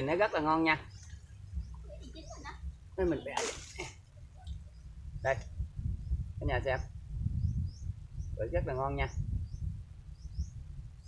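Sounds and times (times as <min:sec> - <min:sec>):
bird chirping: 0:00.0 - 0:03.3, 0:05.9 - 0:10.8.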